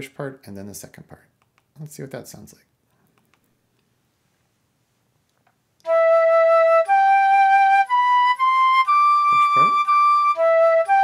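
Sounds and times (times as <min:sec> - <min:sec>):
flute notes: 0:05.8 - 0:11.0.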